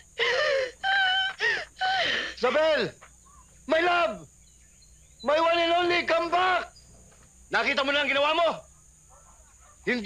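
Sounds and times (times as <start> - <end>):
woman crying and wailing: 0.0 - 2.4
catches of breath: 1.4 - 2.4.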